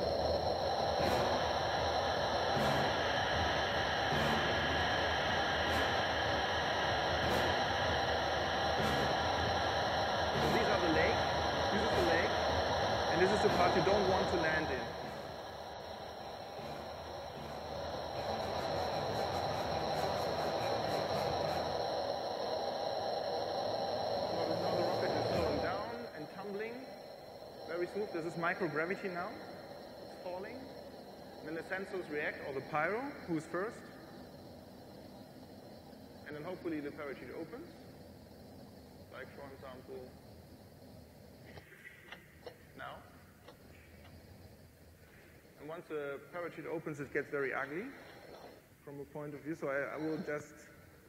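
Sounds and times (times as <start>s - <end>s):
rushing airflow hiss: 0.0s - 51.0s.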